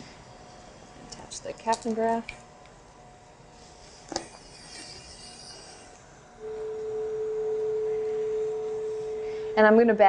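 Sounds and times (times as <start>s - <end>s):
steady electronic tone: 3.5s - 10.0s.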